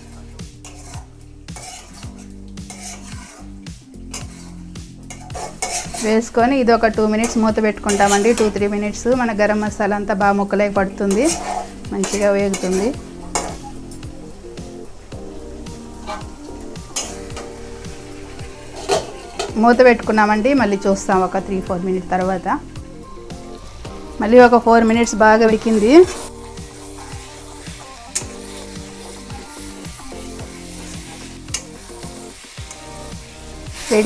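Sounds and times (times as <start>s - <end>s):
spatula scraping a pan: 0.0s - 6.4s, 7.2s - 9.7s, 10.9s - 14.0s, 16.0s - 19.6s, 25.6s - 34.0s
background music: 0.0s - 34.0s
pan sizzling: 0.0s - 34.0s.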